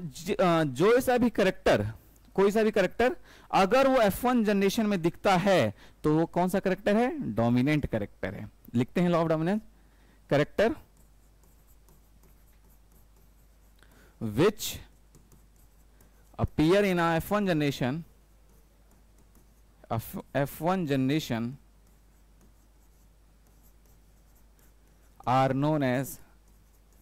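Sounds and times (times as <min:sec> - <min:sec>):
steady low hum: 0:08.2 - 0:27.0
pen scratching on screen: 0:10.4 - 0:27.0
stylus tapping on screen: 0:10.8 - 0:14.0, 0:14.9 - 0:16.7, 0:18.4 - 0:19.7.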